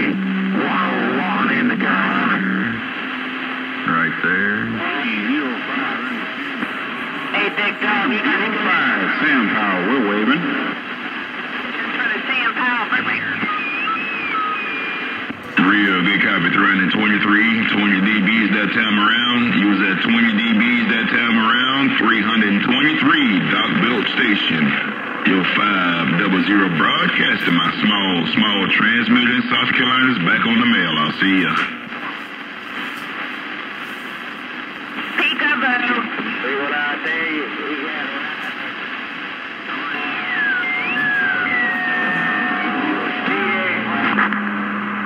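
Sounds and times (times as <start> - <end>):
garbled distant radio voice: 0.0 - 45.0
radio hiss and static: 0.0 - 45.0
wavering whistle tones: 40.0 - 43.0.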